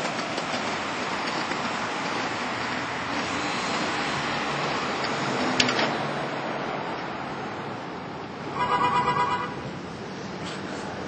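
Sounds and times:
skateboard wheels rolling on asphalt: 0.0 - 8.8.

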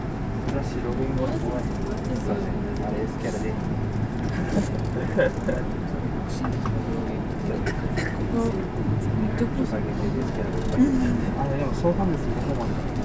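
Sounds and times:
electric train running hum: 0.0 - 13.0
people talking: 0.5 - 3.6, 4.3 - 13.0.

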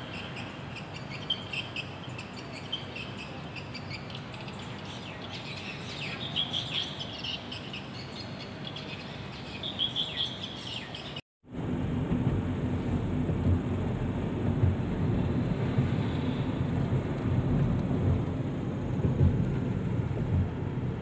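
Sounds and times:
birds chirping: 0.0 - 11.2
road and wind noise in car: 0.0 - 21.0.

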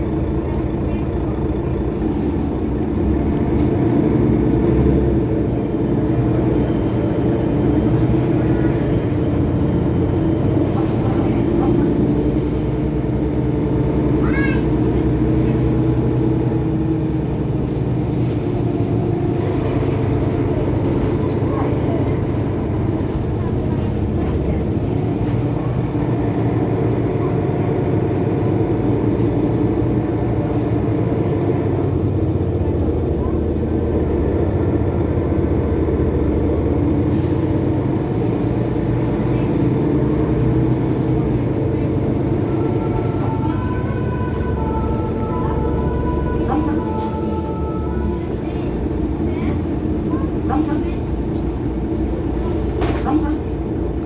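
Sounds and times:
bus diesel engine running: 0.0 - 54.0.

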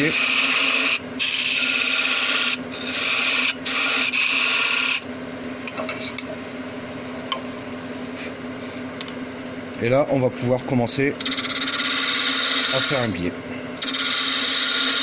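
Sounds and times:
tool cutting wood on lathe: 0.0 - 5.0, 11.2 - 13.2, 13.8 - 15.0
lathe motor hum: 0.0 - 5.1, 10.2 - 15.0.

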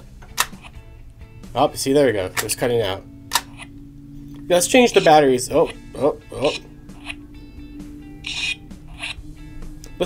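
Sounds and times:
steady electronic tones: 0.0 - 10.0.

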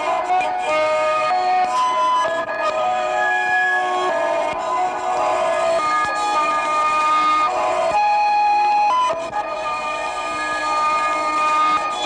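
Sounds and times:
siren-like held electronic tones: 0.0 - 12.0.

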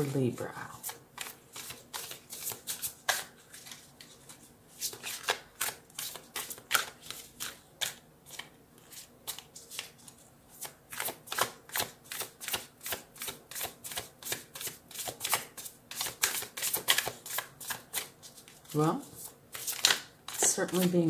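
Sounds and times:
cards being shuffled by hand: 0.8 - 21.0.

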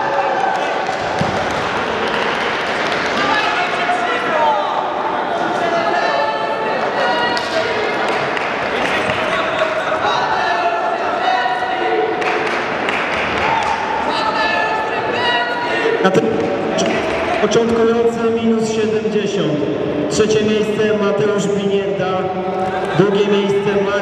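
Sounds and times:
crowd voices calling out: 0.0 - 18.4.

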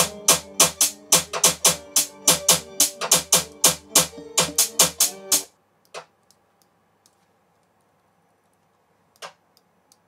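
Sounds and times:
drill beat with guitar loop: 0.0 - 5.5.

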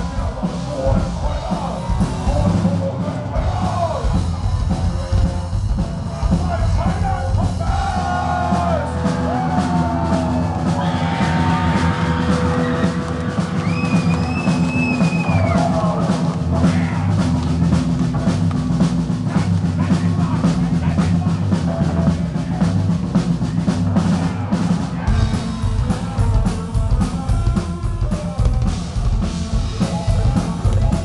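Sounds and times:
heavy metal band playing live: 0.0 - 31.0
person singing: 25.1 - 31.0.

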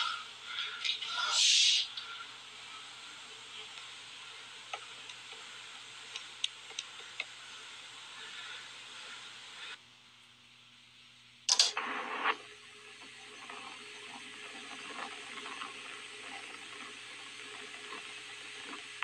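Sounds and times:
radio static hiss with crackles: 0.0 - 19.0.

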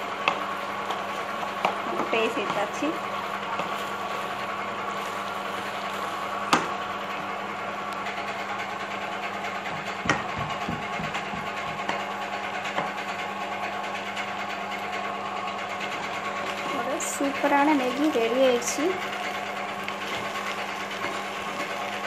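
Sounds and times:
steady machine-like hum: 0.0 - 22.0
utensil knocking against pan: 9.7 - 12.0.

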